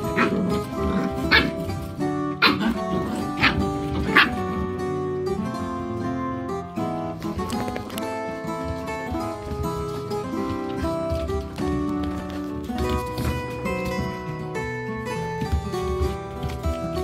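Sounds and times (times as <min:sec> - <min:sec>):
puppies yipping and barking: 0:00.0 - 0:04.6
background music: 0:00.0 - 0:17.0.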